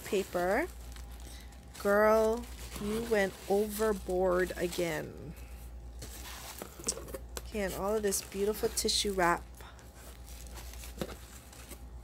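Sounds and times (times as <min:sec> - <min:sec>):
tissue paper rustling: 0:00.0 - 0:05.4, 0:07.6 - 0:12.0
steady low hum: 0:00.0 - 0:12.0.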